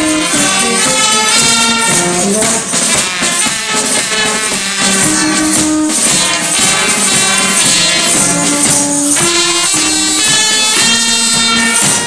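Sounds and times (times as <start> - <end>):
bass drum beat: 0.0 - 12.0
brass instruments holding notes: 0.0 - 12.0.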